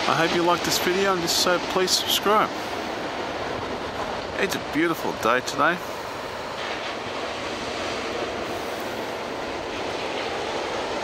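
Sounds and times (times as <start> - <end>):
ocean surf breaking: 0.0 - 11.0
wind buffeting microphone: 0.0 - 11.0.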